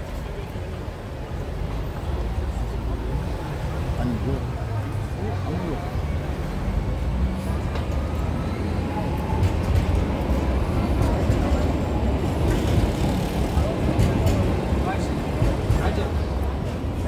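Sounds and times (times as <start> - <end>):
street traffic: 0.0 - 17.0
voices of passersby: 0.0 - 17.0.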